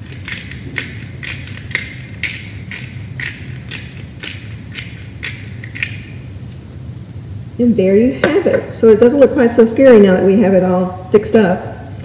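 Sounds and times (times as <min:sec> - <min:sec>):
pepper mill grinding: 0:00.0 - 0:06.2.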